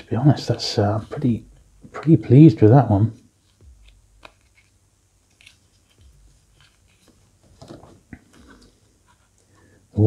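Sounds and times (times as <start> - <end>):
cloth rustling: 3.3 - 9.4.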